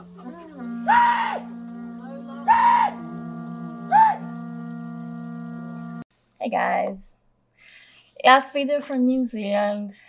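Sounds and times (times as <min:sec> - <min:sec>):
men shouting sharp cries: 0:00.0 - 0:03.1, 0:03.8 - 0:04.3
droning music: 0:00.0 - 0:06.0.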